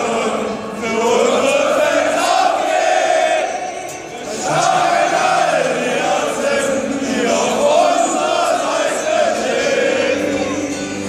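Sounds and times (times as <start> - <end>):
crowd of fans singing: 0.0 - 11.0.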